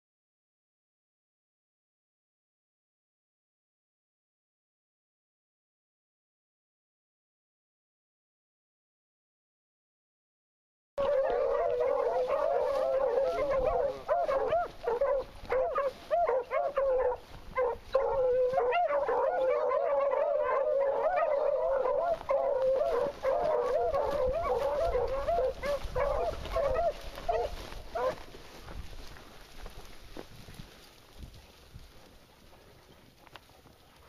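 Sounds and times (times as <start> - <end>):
dogs baying: 11.0 - 28.4.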